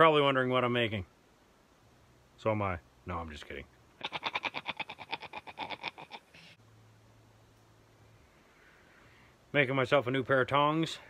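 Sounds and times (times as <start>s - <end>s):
man laughing through audio effect: 4.0s - 6.6s.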